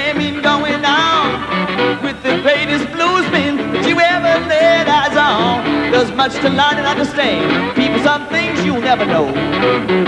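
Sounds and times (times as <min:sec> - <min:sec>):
blues band playing: 0:00.0 - 0:10.0
harmonica wailing: 0:00.0 - 0:10.0.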